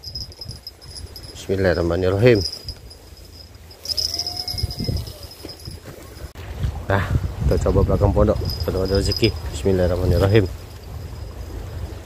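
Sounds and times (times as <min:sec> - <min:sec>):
faint thin rising tone: 0:00.0 - 0:06.3
insects trilling: 0:00.0 - 0:06.3.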